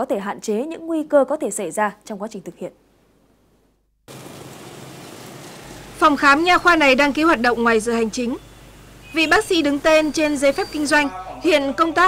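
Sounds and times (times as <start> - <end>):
street traffic noise: 4.1 - 12.0.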